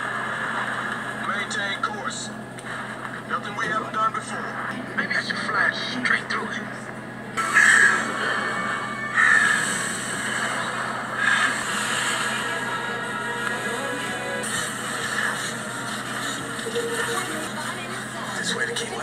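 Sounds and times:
voices: 0:03.2 - 0:19.0
film music: 0:05.2 - 0:19.0.

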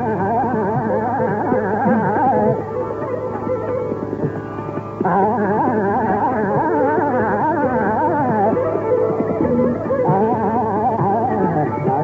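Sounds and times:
person singing fast melodic runs: 0:00.0 - 0:12.0
steady drone: 0:00.0 - 0:12.0.

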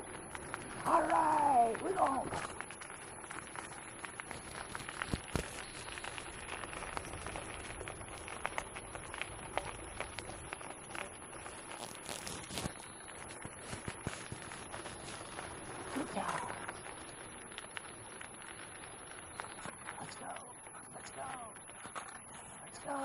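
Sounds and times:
small crackles and rattles: 0:00.0 - 0:23.0
wheels and paws crunching gravel: 0:00.0 - 0:23.0.

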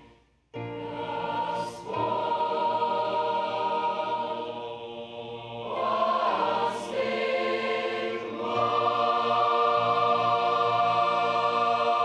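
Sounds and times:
youth choir singing chords: 0:00.0 - 0:12.0.

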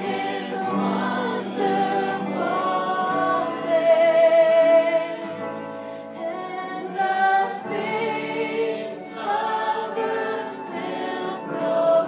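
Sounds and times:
flute: 0:00.0 - 0:12.0.

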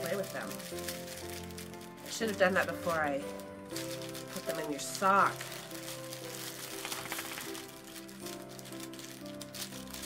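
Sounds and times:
crinkle toy crackling: 0:00.0 - 0:10.0
soft background music: 0:00.0 - 0:10.0.

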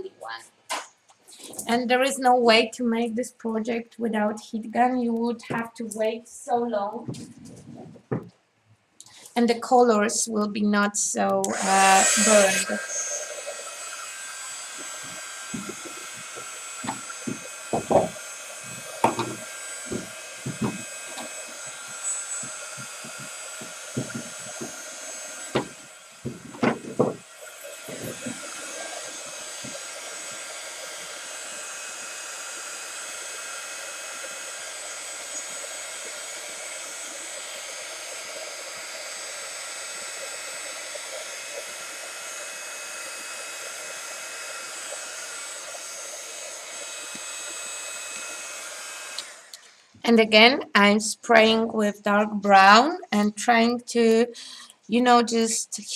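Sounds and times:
heat gun fan whine: 0:04.2 - 0:08.3, 0:11.2 - 0:50.6.

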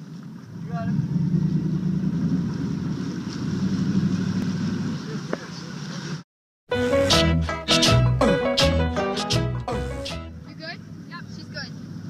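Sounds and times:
water noise: 0:00.0 - 0:06.2
motorboat engine droning: 0:00.1 - 0:06.2.

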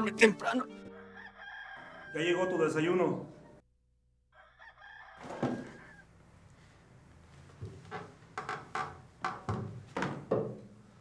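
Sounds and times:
knocks and creaks of wooden bed: 0:05.2 - 0:05.8, 0:07.5 - 0:10.8.

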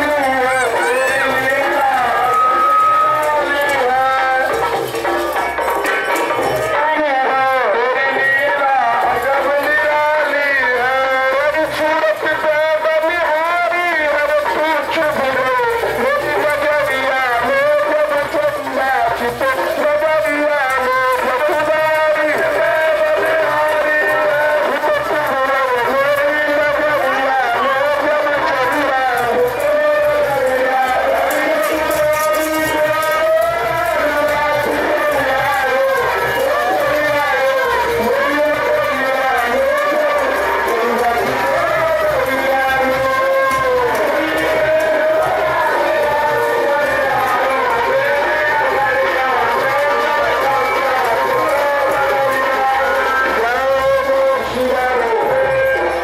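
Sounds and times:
devotional singing with music: 0:00.0 - 0:56.0.

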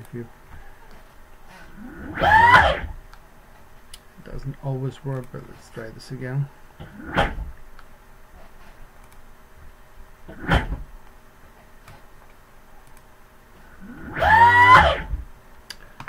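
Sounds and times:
electric motor whine: 0:01.7 - 0:03.0, 0:13.8 - 0:15.3.

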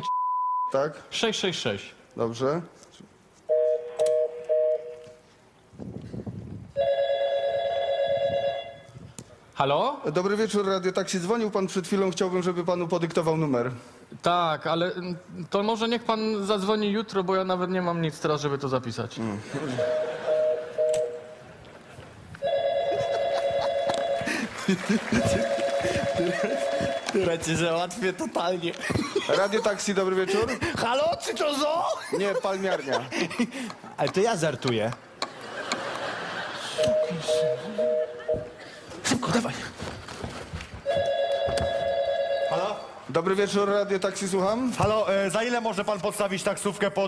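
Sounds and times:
phone ringing: 0:03.5 - 0:05.1, 0:06.8 - 0:08.9, 0:19.8 - 0:21.4, 0:22.4 - 0:24.5, 0:25.1 - 0:27.4, 0:36.8 - 0:38.6, 0:40.8 - 0:43.0
two-tone dialling beeps: 0:19.8 - 0:21.2, 0:36.8 - 0:38.6
audience laughter: 0:22.9 - 0:26.8, 0:35.3 - 0:38.7.

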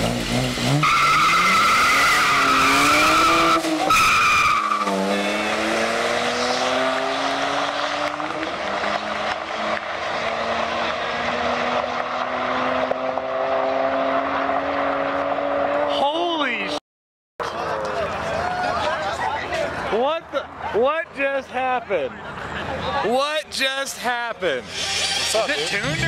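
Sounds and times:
car engines accelerating: 0:00.0 - 0:16.8, 0:17.4 - 0:26.0.

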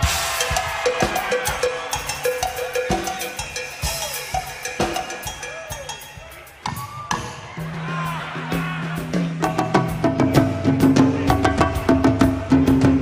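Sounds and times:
drums and percussion playing: 0:00.0 - 0:13.0.

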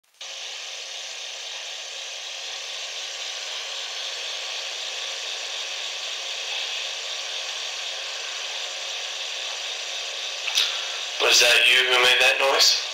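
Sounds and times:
steady background hiss: 0:00.3 - 0:12.9.

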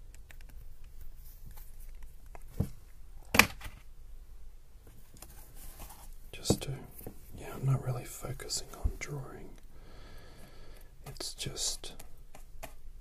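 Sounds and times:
faint taps and rustles: 0:00.1 - 0:03.0, 0:04.8 - 0:07.5.

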